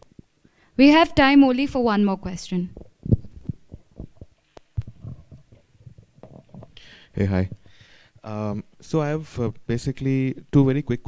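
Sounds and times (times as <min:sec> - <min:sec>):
microphone handling thumps: 0:02.7 - 0:07.8.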